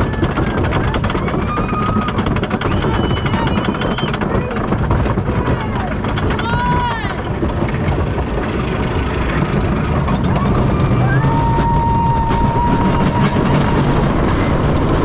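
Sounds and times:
riders' voices: 0.0s - 7.9s
roller coaster rumbling on wooden track: 0.0s - 15.0s
person whooping: 10.6s - 13.9s.

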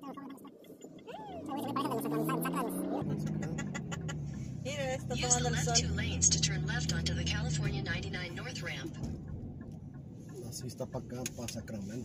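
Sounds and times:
road noise inside car: 0.0s - 12.0s.

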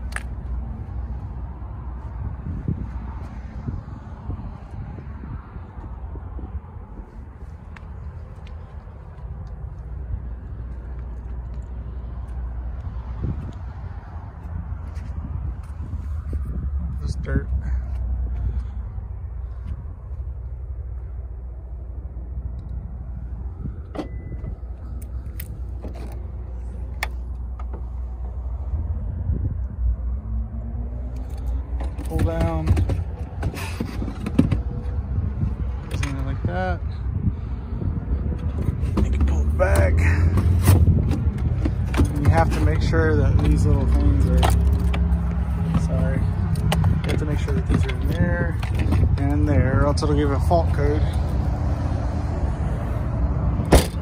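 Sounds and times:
steady low rumble: 0.0s - 54.0s.

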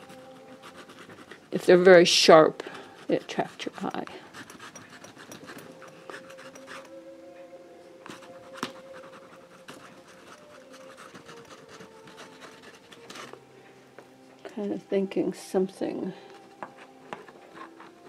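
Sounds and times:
pastel scratching on canvas: 0.0s - 1.8s, 2.8s - 6.8s, 8.1s - 13.4s.

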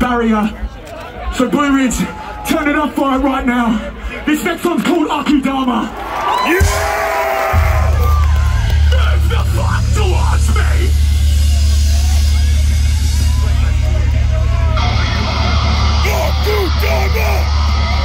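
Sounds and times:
crowd yelling: 0.8s - 3.1s, 5.8s - 18.0s
deep bass drone over pa: 7.6s - 18.0s.

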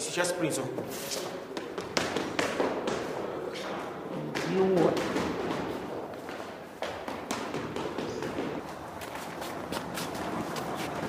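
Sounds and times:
footsteps on stone stairs: 6.1s - 11.0s.

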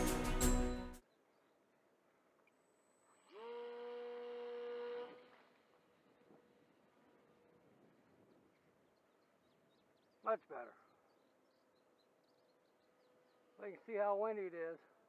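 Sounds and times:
model plane engine buzzing: 3.2s - 7.4s.

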